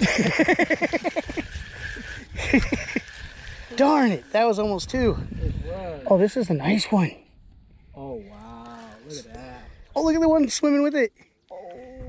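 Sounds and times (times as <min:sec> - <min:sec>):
fishing reel whirring: 0:00.0 - 0:05.4.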